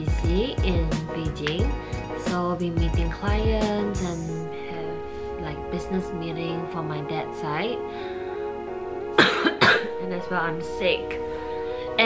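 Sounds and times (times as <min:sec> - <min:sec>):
background music: 0:00.0 - 0:12.0
woman coughing: 0:09.2 - 0:10.0.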